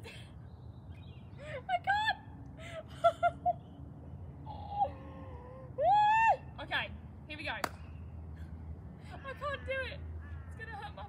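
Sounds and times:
woman whimpering and squealing: 0:04.5 - 0:06.4
woman yelping: 0:04.5 - 0:06.5.

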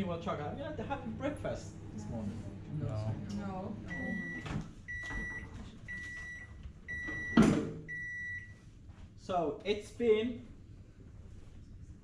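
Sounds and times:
microwave beeping: 0:03.8 - 0:08.6.

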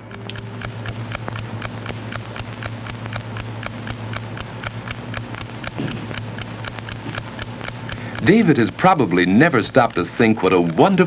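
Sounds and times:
alarm clock ticking: 0:00.0 - 0:11.0
low steady hum: 0:00.0 - 0:11.0.

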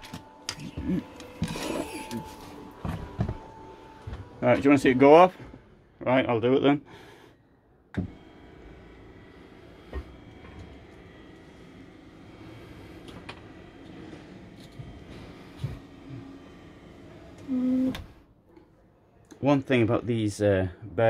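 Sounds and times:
bed lift motor running: 0:00.0 - 0:18.4.

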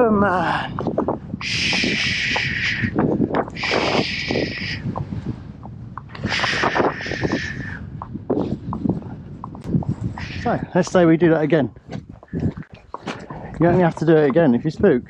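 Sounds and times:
hooves clopping on pavement: 0:00.5 - 0:15.0
person shushing: 0:01.4 - 0:04.8, 0:06.2 - 0:07.8, 0:10.2 - 0:10.7.

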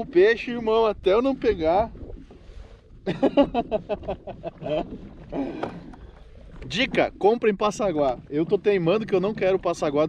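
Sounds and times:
man talking: 0:00.0 - 0:01.9, 0:06.6 - 0:10.0.

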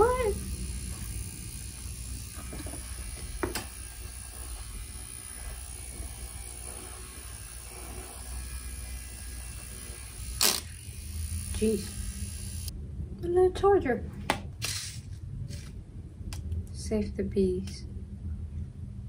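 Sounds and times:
handheld fan humming: 0:00.0 - 0:12.7.

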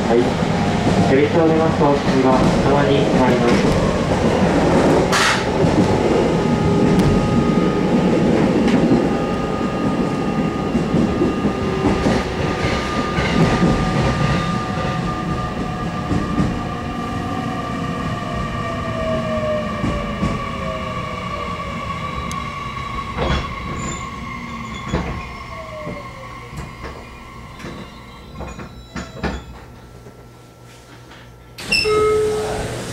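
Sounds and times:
train rumble and motor whine: 0:00.0 - 0:32.9.

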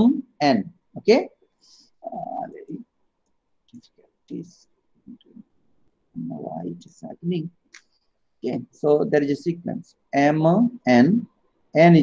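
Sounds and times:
man speaking: 0:00.0 - 0:01.3, 0:02.0 - 0:02.8, 0:04.3 - 0:05.4, 0:06.2 - 0:07.6, 0:08.4 - 0:12.0.

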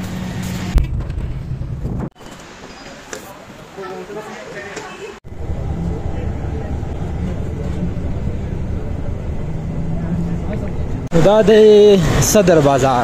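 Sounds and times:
bus engine low rumble: 0:05.3 - 0:11.1.

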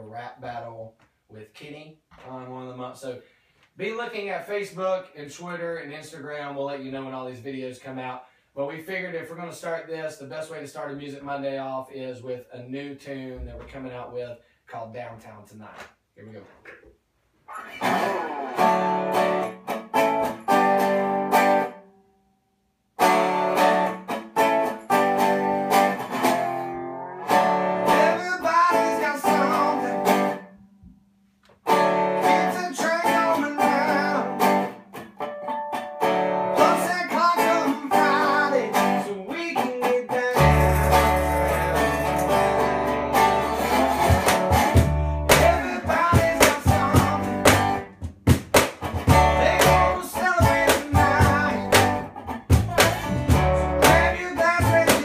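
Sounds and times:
resonator guitar blues: 0:17.5 - 0:21.9, 0:23.0 - 0:30.8, 0:31.6 - 0:55.0
man singing: 0:27.9 - 0:30.3, 0:32.2 - 0:34.6, 0:36.6 - 0:42.2, 0:45.3 - 0:47.8, 0:49.1 - 0:52.1, 0:52.7 - 0:55.0
upright bass notes: 0:40.3 - 0:55.0.

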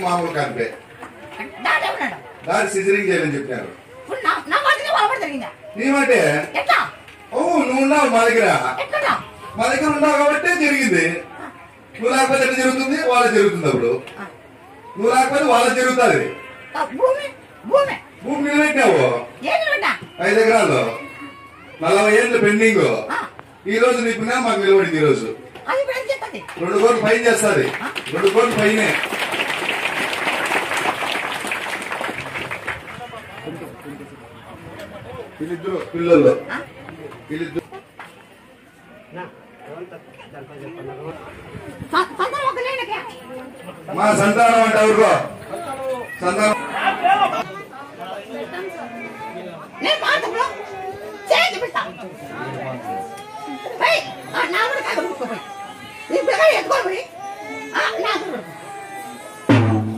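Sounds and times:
crowd applauding: 0:26.5 - 0:33.6.

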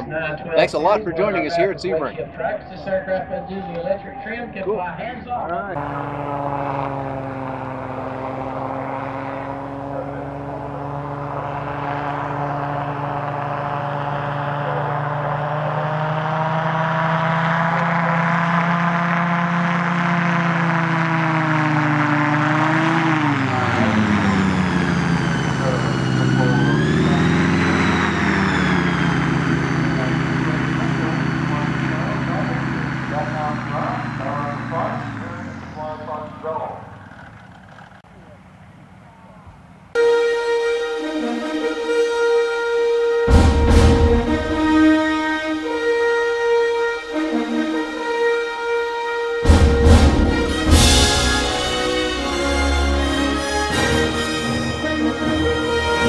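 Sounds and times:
aircraft engine and propeller running: 0:05.7 - 0:56.0.

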